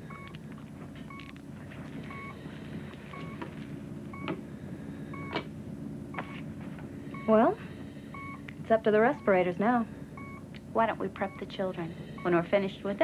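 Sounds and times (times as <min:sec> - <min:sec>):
medical monitor beeping: 0:00.0 - 0:04.4, 0:05.1 - 0:05.5, 0:06.1 - 0:06.5, 0:07.1 - 0:13.0
low equipment hum: 0:00.0 - 0:13.0.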